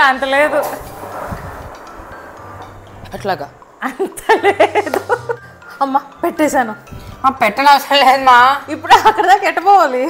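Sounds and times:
low thumps: 0:00.0 - 0:05.2.

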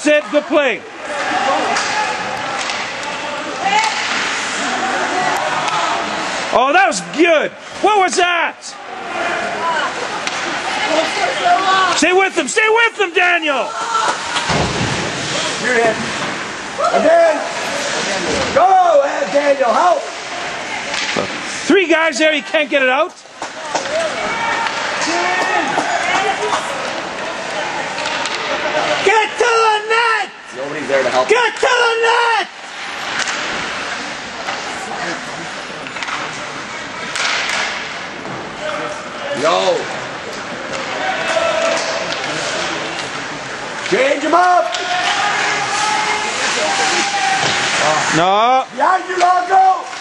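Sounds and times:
spectators shouting: 0:00.0 - 0:15.5, 0:23.6 - 0:30.5, 0:40.6 - 0:42.9, 0:44.1 - 0:48.2
steady noisy din: 0:00.0 - 0:50.0.

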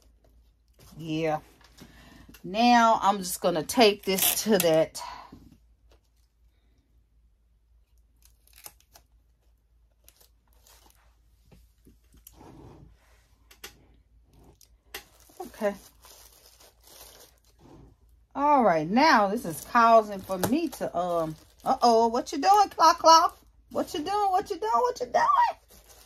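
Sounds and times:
paper rustling and crinkling: 0:08.2 - 0:12.3, 0:15.0 - 0:17.9, 0:19.0 - 0:22.0, 0:25.5 - 0:26.0.

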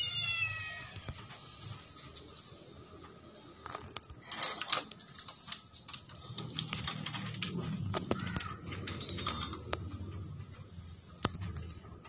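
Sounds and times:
chain and metal chair rattling: 0:04.2 - 0:10.7.

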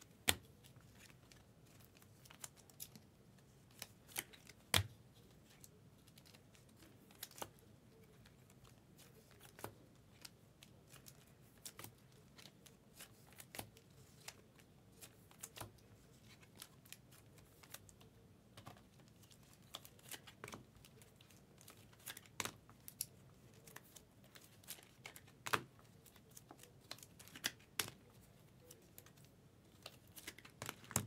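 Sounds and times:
cards clicking into plastic sleeve: 0:19.4 - 0:28.0.

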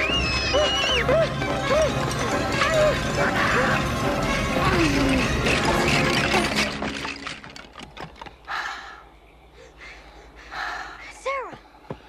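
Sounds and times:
orchestral music: 0:00.2 - 0:06.8.

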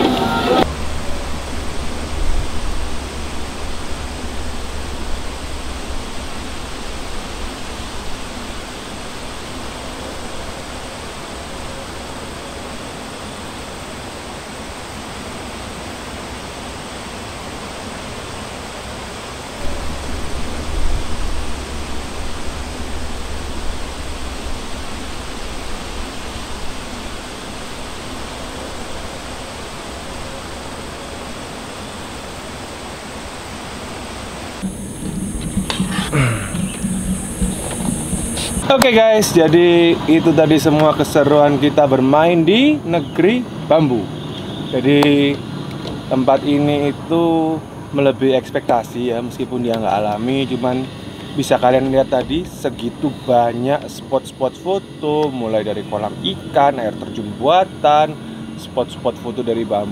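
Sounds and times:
low rumble: 0:00.0 - 0:12.2, 0:19.5 - 0:30.4, 0:34.6 - 0:38.7
steady rushing noise: 0:00.0 - 0:59.9.

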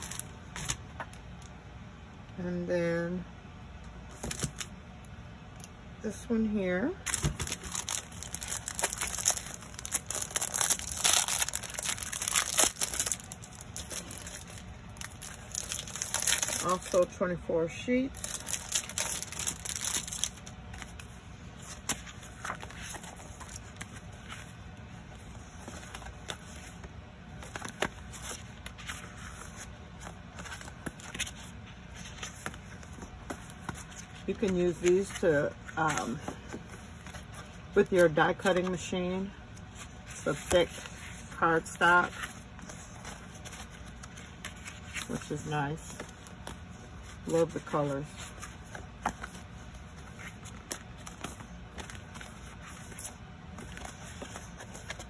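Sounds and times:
cardstock sheets rustling: 0:00.0 - 0:01.2, 0:07.1 - 0:17.2, 0:18.1 - 0:39.0, 0:39.6 - 0:55.0
low background hum: 0:00.0 - 0:55.0
plastic wrapping crinkling: 0:07.0 - 0:17.1, 0:18.2 - 0:24.4.

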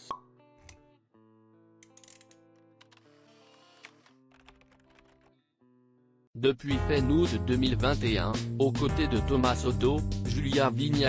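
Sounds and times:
soft music: 0:00.0 - 0:05.8, 0:06.4 - 0:11.0.

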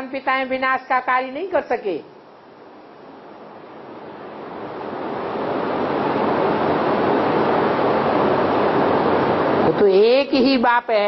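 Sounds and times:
broad rushing noise: 0:01.0 - 0:11.0.

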